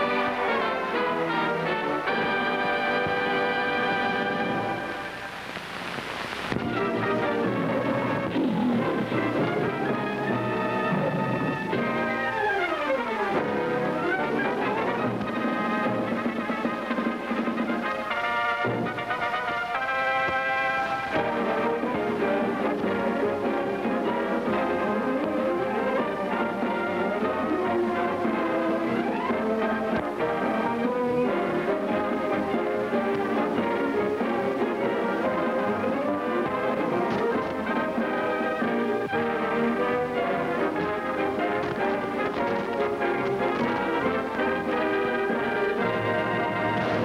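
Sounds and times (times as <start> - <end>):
orchestral music led by brass: 0.0 - 5.5, 6.5 - 47.0.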